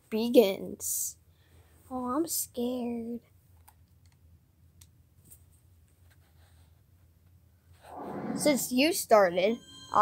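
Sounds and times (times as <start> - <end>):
person speaking: 7.9 - 10.0.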